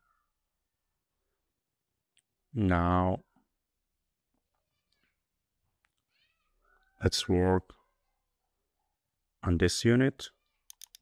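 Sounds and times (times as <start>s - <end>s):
man speaking: 2.5s - 3.3s, 7.0s - 7.7s, 9.4s - 10.4s
faint small clicks: 10.7s - 11.0s.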